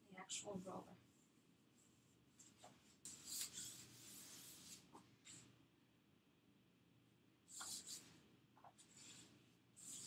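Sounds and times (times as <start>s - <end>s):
roller rubbing on countertop: 3.1s - 5.0s.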